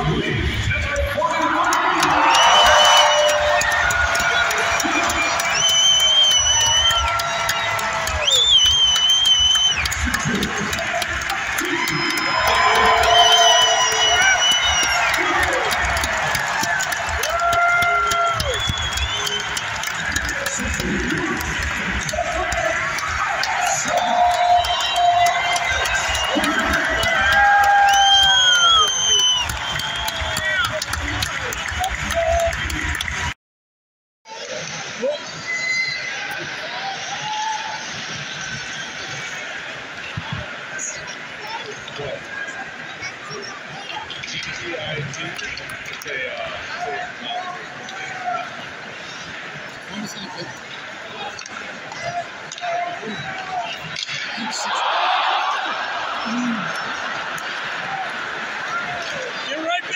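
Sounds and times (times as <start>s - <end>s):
crowd cheering: 0.0s - 33.4s, 34.3s - 59.9s.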